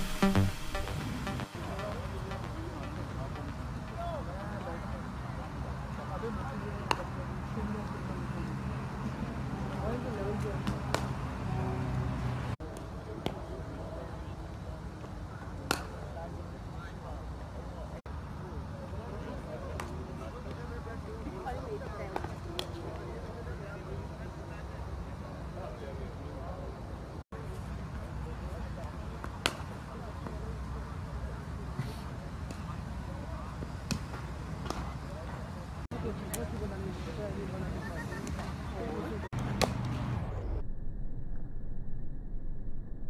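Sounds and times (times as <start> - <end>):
faint distant voices: 1.5 - 40.6.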